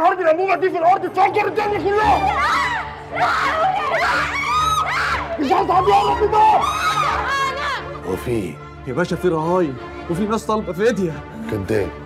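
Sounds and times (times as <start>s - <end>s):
girl screaming and sobbing: 2.0s - 8.0s.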